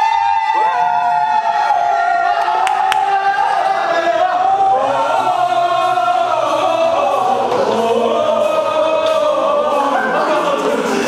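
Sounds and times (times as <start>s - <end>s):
young men cheering and yelling: 0.0s - 7.4s.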